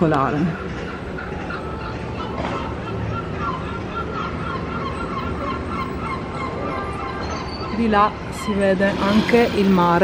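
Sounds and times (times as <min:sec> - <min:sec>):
background noise: 0:00.0 - 0:10.0
bird calling: 0:00.2 - 0:10.0.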